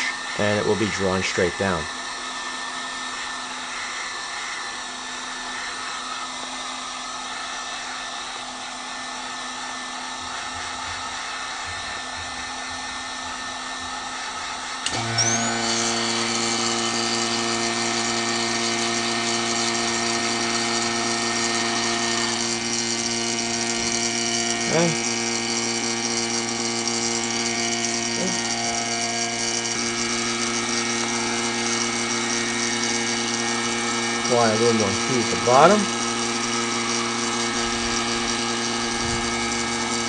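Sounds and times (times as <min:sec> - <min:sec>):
heat gun blowing: 0:00.0 - 0:40.0
vacuum pump motor hum: 0:00.0 - 0:40.0.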